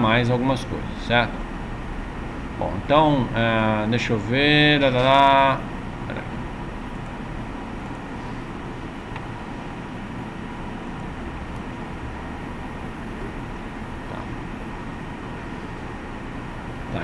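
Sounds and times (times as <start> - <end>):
faint steady hum: 0.0 - 17.0.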